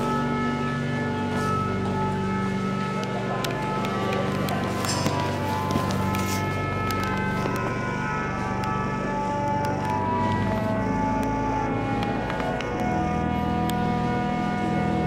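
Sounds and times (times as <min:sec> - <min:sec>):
pipe organ chords: 0:00.0 - 0:15.0.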